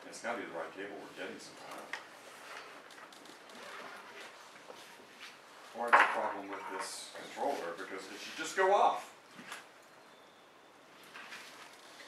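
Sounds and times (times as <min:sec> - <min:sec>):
faint clicks and rustles: 0:01.1 - 0:08.5, 0:11.0 - 0:12.0.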